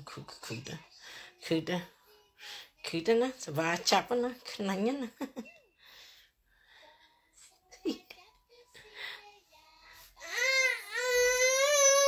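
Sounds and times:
baby crying: 0:10.2 - 0:12.0.

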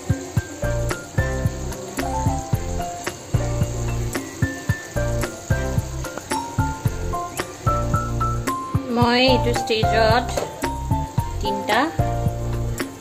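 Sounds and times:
background music with beat: 0:00.0 - 0:13.0.

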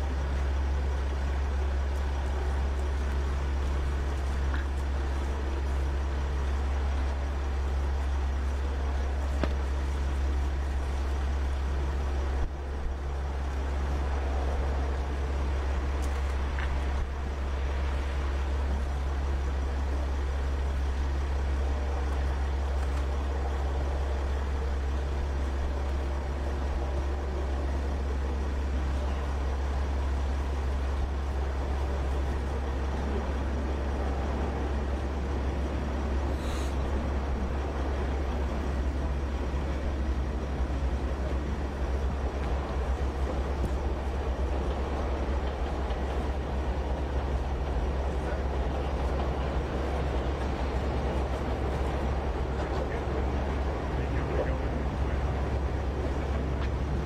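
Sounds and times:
vehicle engine idling: 0:00.0 - 0:57.0.

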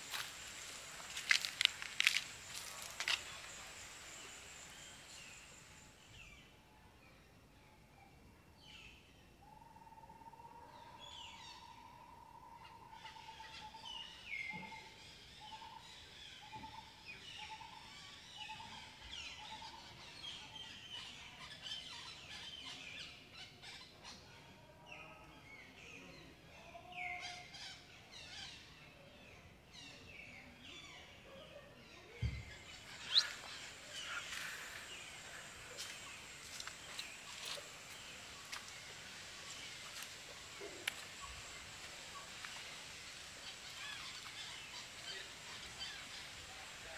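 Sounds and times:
bird whistles and chirps: 0:33.0 - 0:33.4.

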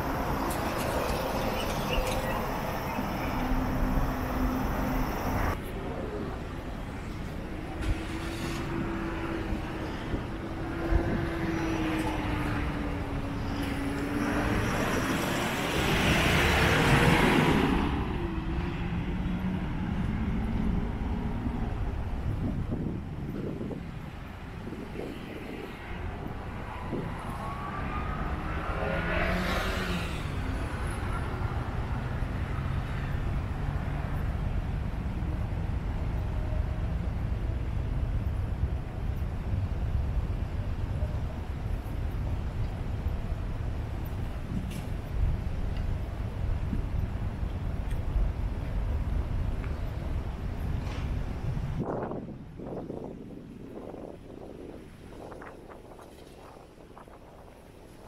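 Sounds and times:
cars and trucks passing: 0:00.0 - 0:58.0
vehicle passing loudly: 0:25.4 - 0:32.8.

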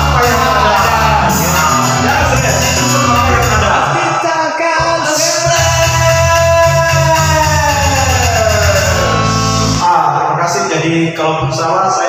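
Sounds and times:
low bass line: 0:00.0 - 0:04.2, 0:04.8 - 0:10.3
rock backing music: 0:00.0 - 0:04.2, 0:05.0 - 0:09.9
electric guitar: 0:04.8 - 0:09.9.

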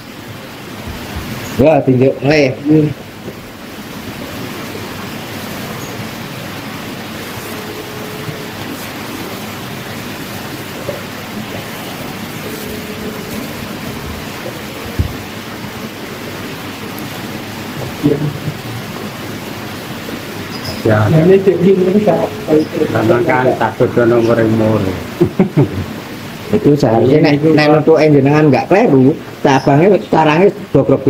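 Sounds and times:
steady hissing noise: 0:00.0 - 0:31.0.

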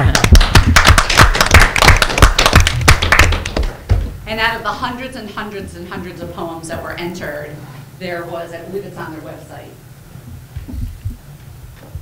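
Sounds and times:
small group applauding: 0:00.0 - 0:03.8.

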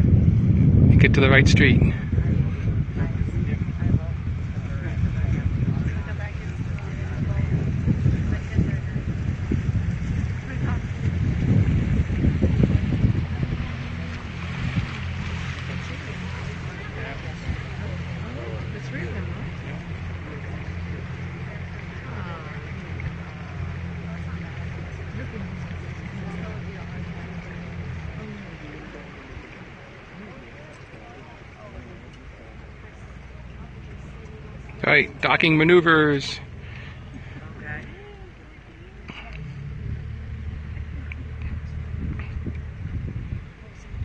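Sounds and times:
outboard motor humming: 0:00.0 - 0:44.0
faint voices: 0:00.9 - 0:44.0.

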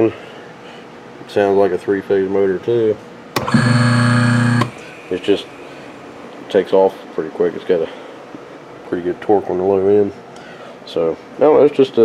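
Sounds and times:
electric motor humming: 0:03.4 - 0:05.6
switch click: 0:04.4 - 0:04.9.

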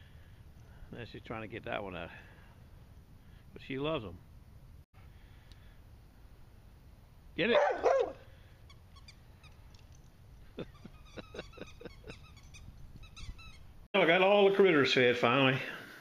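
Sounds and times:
dog yipping: 0:07.5 - 0:08.2.

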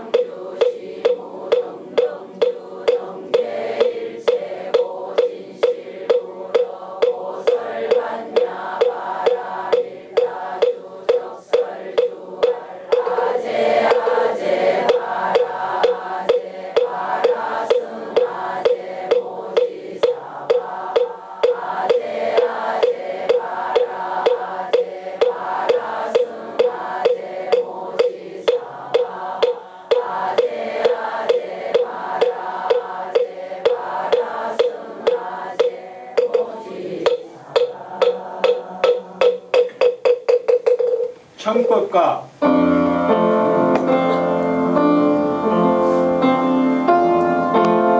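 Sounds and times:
congregation chanting: 0:00.0 - 0:39.6, 0:42.4 - 0:47.9
wooden fish knocks: 0:00.0 - 0:41.1.

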